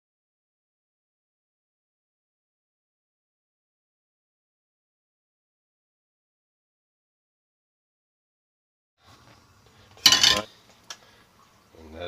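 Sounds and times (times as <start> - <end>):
metal kitchenware clattering: 10.0 - 10.5.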